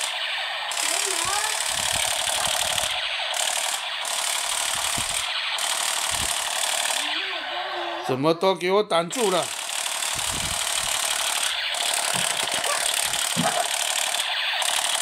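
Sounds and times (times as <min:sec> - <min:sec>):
toy gun electronic rapid-fire buzz: 0:00.0 - 0:07.6, 0:09.1 - 0:15.0.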